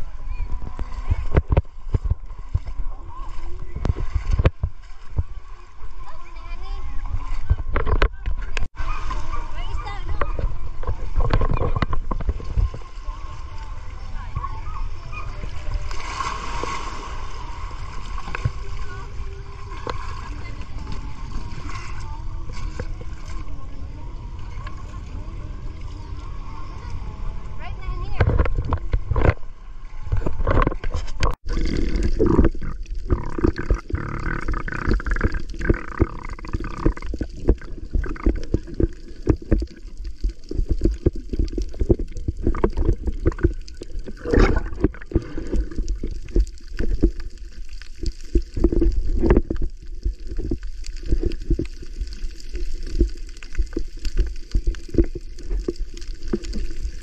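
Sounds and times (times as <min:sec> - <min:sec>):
water sloshing and gurgling: 0:00.0 - 0:57.0
splashy strokes: 0:15.5 - 0:19.3.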